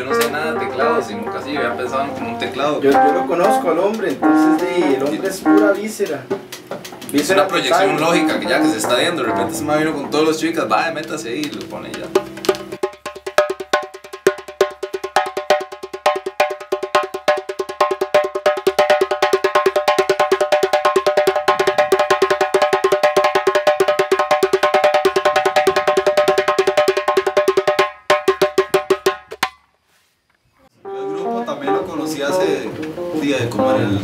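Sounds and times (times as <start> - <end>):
djembe played with hands: 0.0 - 29.6.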